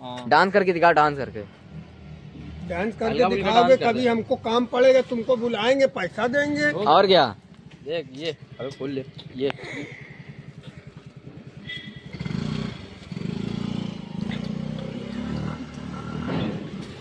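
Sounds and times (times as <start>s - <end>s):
motorbike engine idling: 6.1s - 14.6s.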